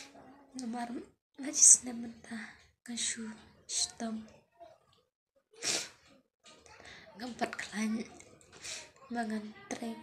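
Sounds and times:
woman talking: 0.6s - 4.3s.

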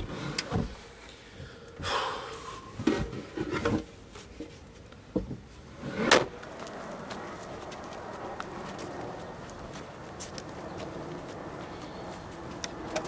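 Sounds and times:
distant traffic: 0.0s - 13.0s.

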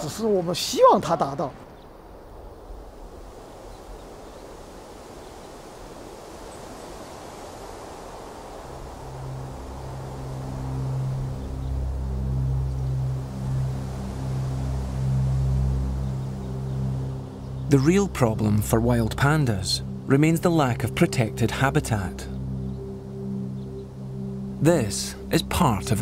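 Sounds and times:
soft airy ambient music: 2.0s - 26.0s
low sustained notes: 2.3s - 26.0s.

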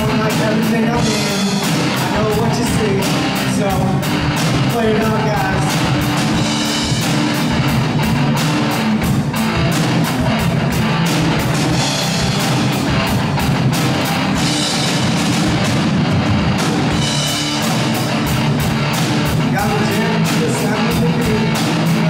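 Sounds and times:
drum kit playing: 0.0s - 22.0s
electric guitar: 0.0s - 22.0s.

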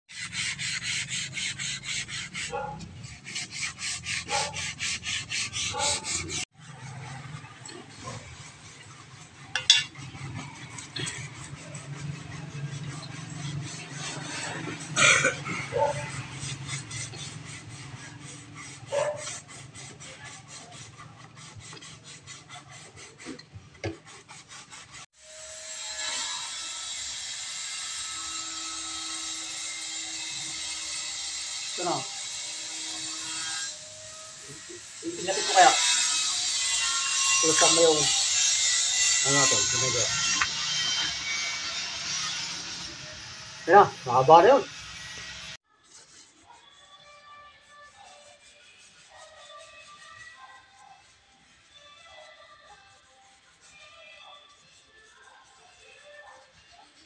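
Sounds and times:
sandpaper scraping on wood: 0.1s - 57.0s.

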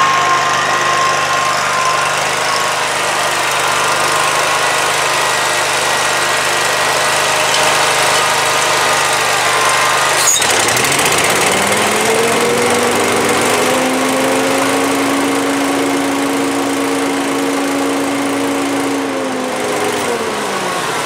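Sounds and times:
mower engine revving: 0.0s - 21.0s.

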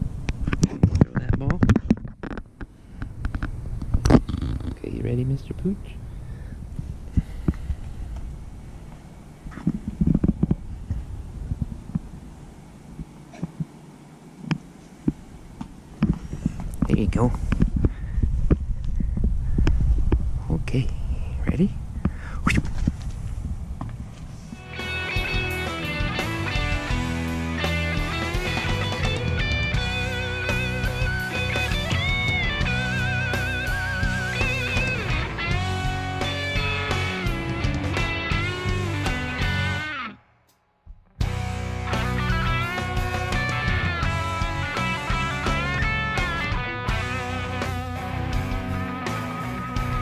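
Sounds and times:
electric guitar background music: 24.6s - 40.2s, 41.2s - 50.0s.

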